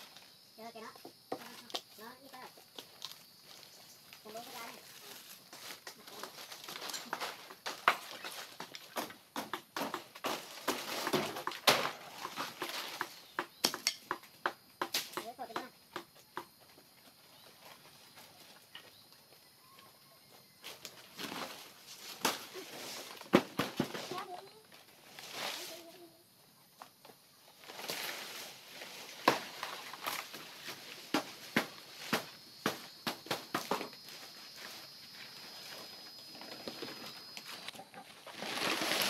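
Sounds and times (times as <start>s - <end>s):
dry palm fronds rustling: 1.4s - 13.5s, 20.6s - 26.1s, 27.4s - 39.0s
sharp snaps and knocks: 6.8s - 16.5s.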